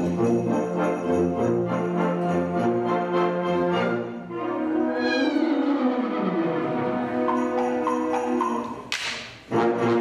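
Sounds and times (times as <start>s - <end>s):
concert band brass and wind chords: 0.0s - 10.0s.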